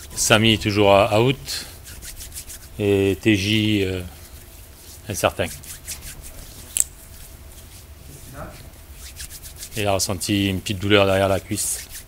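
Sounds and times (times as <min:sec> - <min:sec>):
hands rubbing together: 0:01.5 - 0:10.2, 0:11.1 - 0:12.0.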